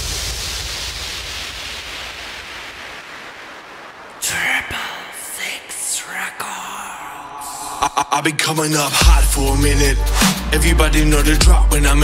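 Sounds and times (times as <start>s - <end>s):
synthesized white noise sweep: 0.0s - 12.0s.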